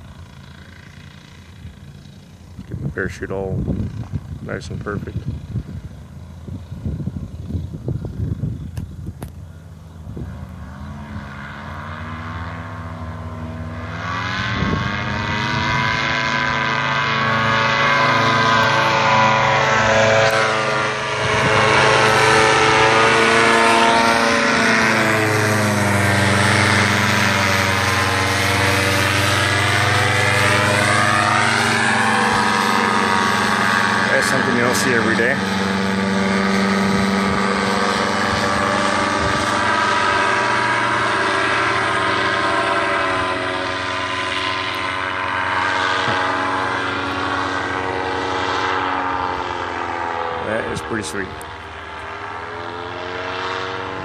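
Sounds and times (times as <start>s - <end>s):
paramotor engine and propeller: 0.0s - 54.0s.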